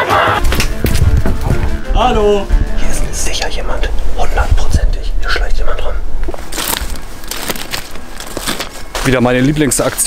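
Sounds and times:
footsteps through brambles: 6.0 - 10.0
footsteps crunching on gravel: 6.2 - 10.0.

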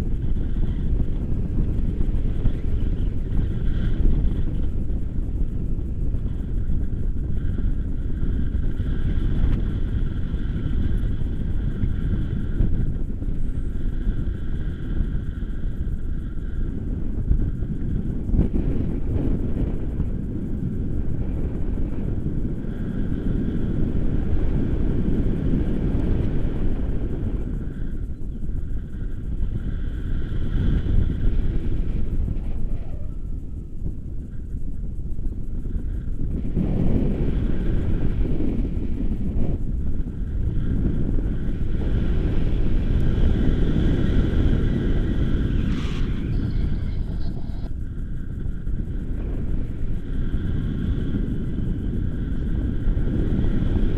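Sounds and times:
faint high steady tone: 0.0 - 53.5
wind buffeting microphone: 0.0 - 53.9.

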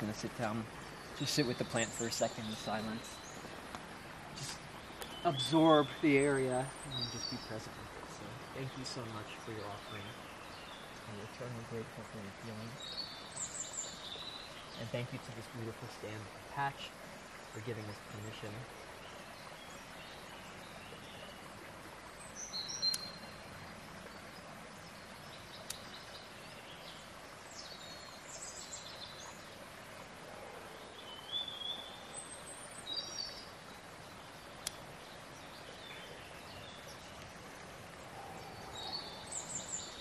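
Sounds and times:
birds chirping: 0.0 - 40.0
soft steady hiss: 0.0 - 40.0
faint sharp ticks: 22.8 - 23.2, 25.6 - 25.9, 34.6 - 34.8.

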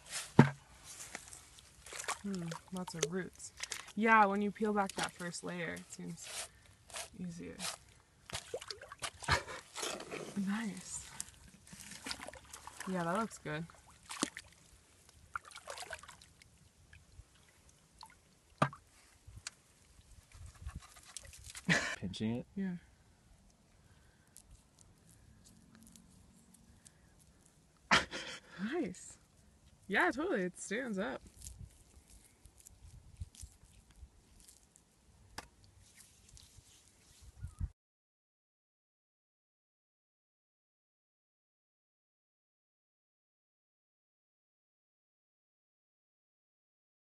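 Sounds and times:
faint handling rustle: 0.0 - 8.0, 35.6 - 37.5
wet clay sloshing and squelching: 0.0 - 21.7, 31.2 - 35.0.

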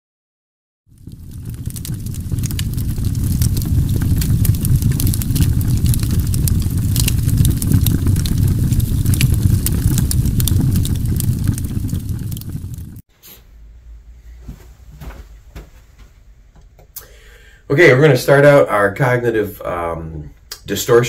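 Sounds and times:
campfire crackling and popping: 0.9 - 13.0.

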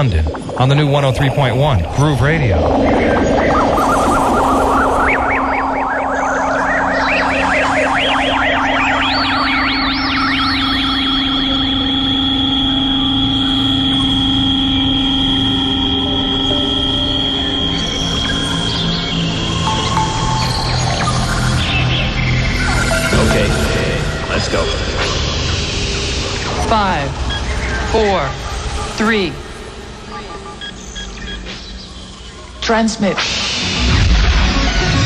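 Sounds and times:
ambient synthesizer music: 0.0 - 35.0
low synthesizer drone: 0.0 - 35.0.

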